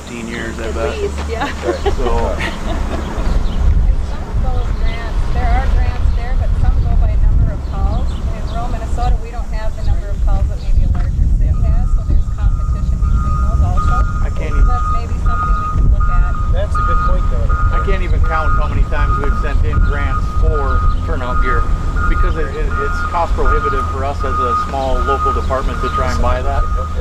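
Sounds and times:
diesel engine rumble: 0.0s - 27.0s
reversing alarm beeping: 7.8s - 27.0s.

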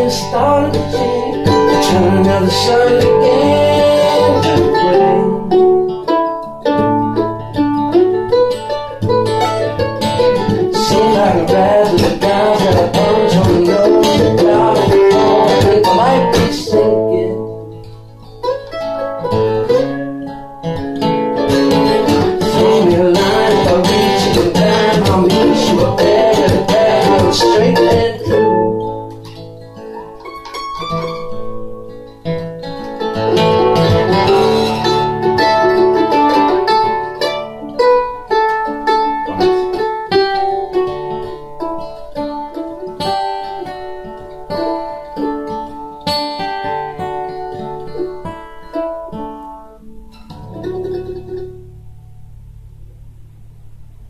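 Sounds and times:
acoustic guitar: 0.0s - 54.0s
mandolin: 0.0s - 54.0s.

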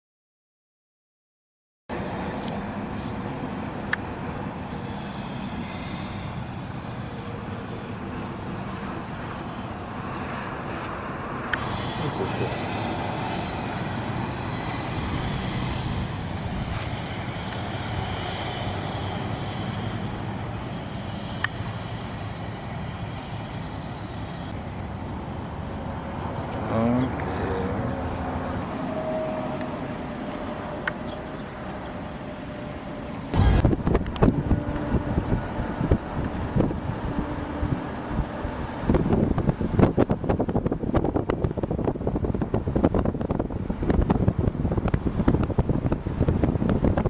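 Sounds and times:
highway traffic noise: 1.9s - 47.0s
semi-trailer truck passing: 1.9s - 47.0s.

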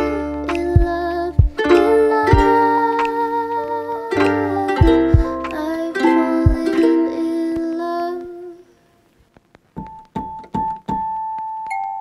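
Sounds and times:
plucked-string instrumental music: 0.0s - 8.5s.

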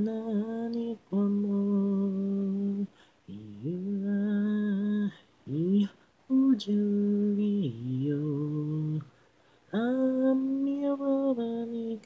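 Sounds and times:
unaccompanied singing voice: 0.0s - 12.0s.

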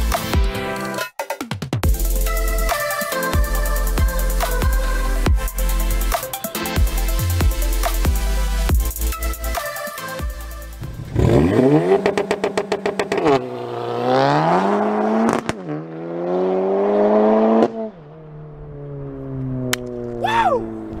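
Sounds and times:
car engine revving against limiter: 10.8s - 18.2s
car accelerating through gears: 10.9s - 21.0s.

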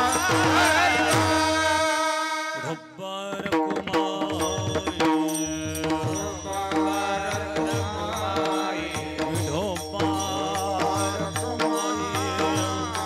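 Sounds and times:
regular drum beat: 0.0s - 2.0s
man singing devotional melody: 0.0s - 13.0s.

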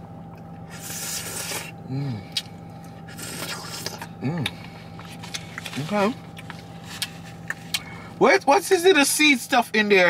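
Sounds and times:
person slurping from spoon: 0.7s - 1.7s
person humming mm: 0.8s - 2.5s, 3.2s - 4.6s.

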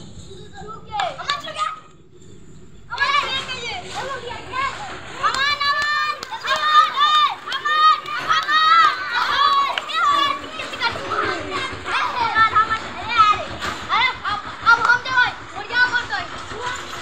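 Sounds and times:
boys shouting: 2.9s - 17.0s.

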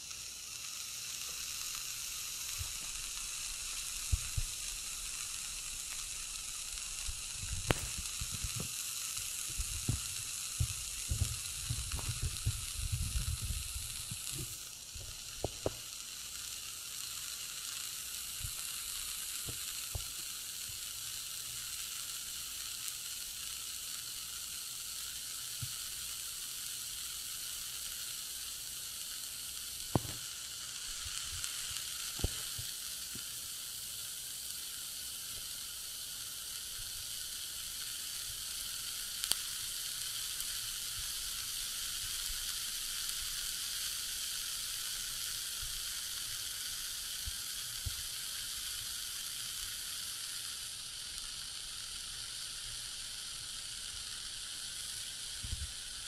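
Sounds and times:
sharp crackles: 0.0s - 56.0s
steady hiss of burning: 0.0s - 56.0s.

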